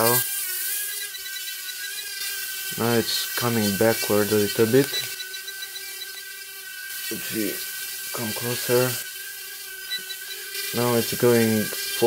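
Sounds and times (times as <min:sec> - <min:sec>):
quadcopter buzzing whine: 0:00.0 - 0:12.0.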